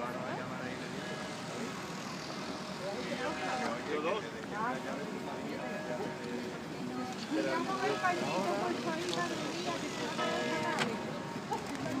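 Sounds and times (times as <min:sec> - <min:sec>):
people talking: 0:02.8 - 0:12.0.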